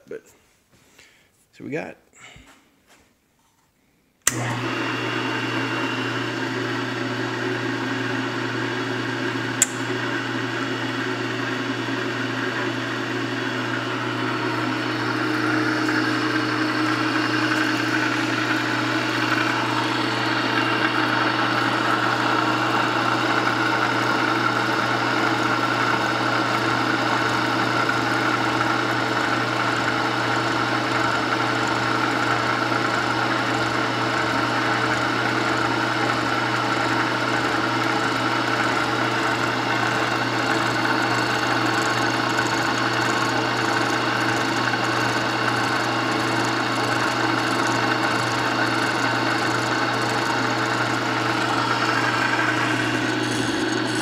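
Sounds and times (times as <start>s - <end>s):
milling machine motor hum: 4.2s - 54.0s
milling cutter cutting metal: 9.3s - 10.0s, 13.6s - 54.0s
sharp click: 9.6s - 9.8s.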